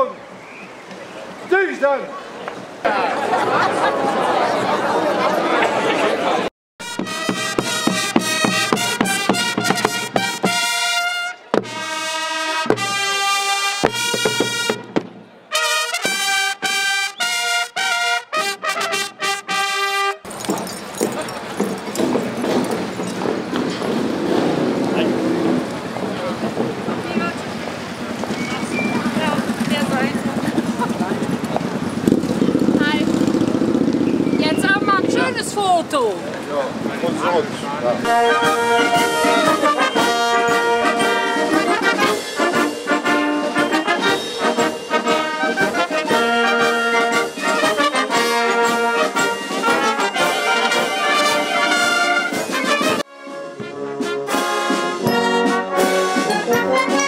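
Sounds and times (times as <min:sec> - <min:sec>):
crowd chatter: 0:00.0 - 0:57.0
street noise: 0:00.0 - 0:57.0
brass band playing: 0:06.8 - 0:20.4, 0:21.9 - 0:27.4, 0:37.1 - 0:57.0.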